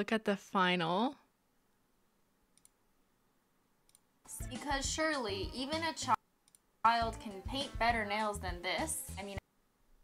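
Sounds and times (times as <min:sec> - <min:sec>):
faint computer mouse clicks: 0:02.5 - 0:02.8, 0:03.8 - 0:04.1, 0:06.4 - 0:06.7.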